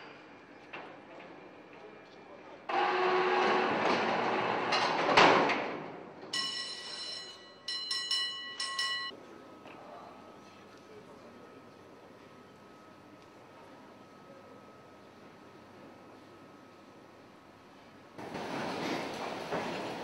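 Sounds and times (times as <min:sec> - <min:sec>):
steel doors sliding shut: 0:02.7 - 0:06.0, 0:18.2 - 0:20.0.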